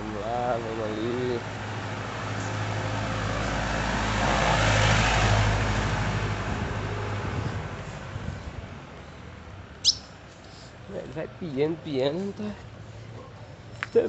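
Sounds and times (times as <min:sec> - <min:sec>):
low engine hum: 0:00.0 - 0:14.0
vehicle passing: 0:00.0 - 0:14.0
bird chirp: 0:09.8 - 0:10.6.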